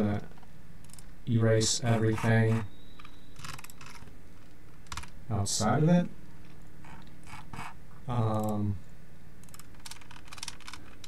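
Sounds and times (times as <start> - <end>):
steady low hum: 0.0 - 11.0
keyboard and mouse clicks: 0.8 - 1.1, 2.1 - 5.2, 8.3 - 8.6, 9.4 - 11.0.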